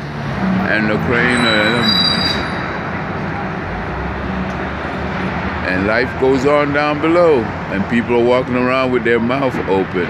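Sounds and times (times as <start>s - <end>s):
street traffic roar: 0.0s - 10.0s.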